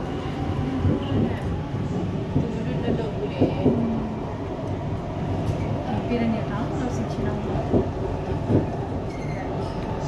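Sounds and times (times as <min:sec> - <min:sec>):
train rumbling along track: 0:00.0 - 0:10.0.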